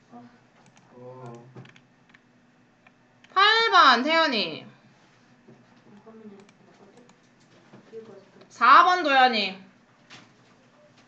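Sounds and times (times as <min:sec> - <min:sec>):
computer input clicks: 0:06.0 - 0:07.5.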